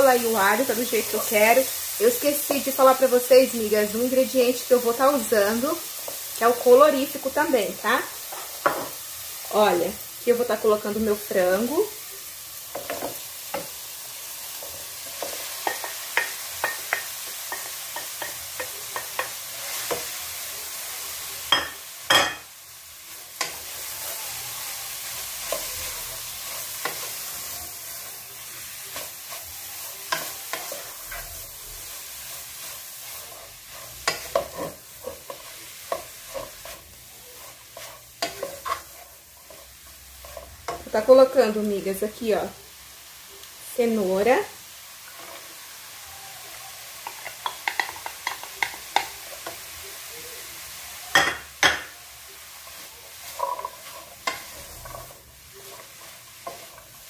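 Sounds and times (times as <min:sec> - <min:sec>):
food sizzling in oil: 0:00.0 - 0:57.0
wooden spoon scraping pot: 0:31.9 - 0:41.0, 0:52.7 - 0:57.0.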